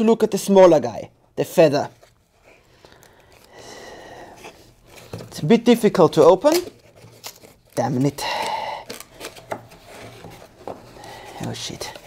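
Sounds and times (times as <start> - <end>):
cardboard rubbing and scraping: 9.2 - 12.0.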